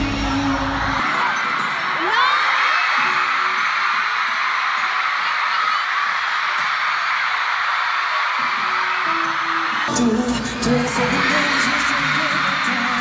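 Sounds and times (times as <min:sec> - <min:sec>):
crowd screaming and cheering: 0:00.0 - 0:13.0.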